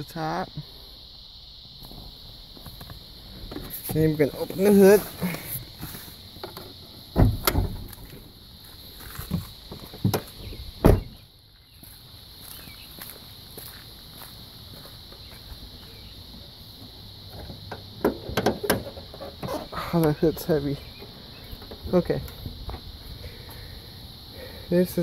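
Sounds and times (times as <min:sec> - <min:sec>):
latch clicks and clunks: 0:06.4 - 0:08.1, 0:17.3 - 0:19.8
door thump: 0:07.2 - 0:08.0, 0:10.8 - 0:11.2.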